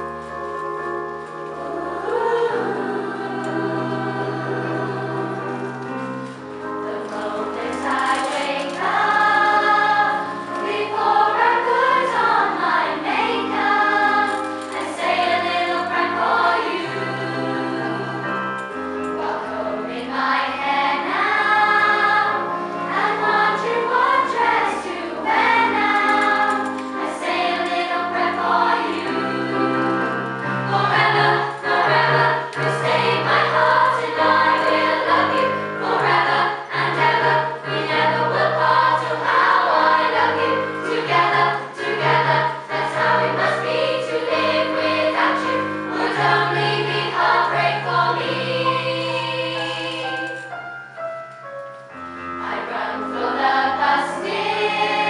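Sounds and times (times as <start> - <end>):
keyboard accompaniment: 0.0 - 55.0
girls' choir singing: 1.4 - 50.6, 52.4 - 55.0.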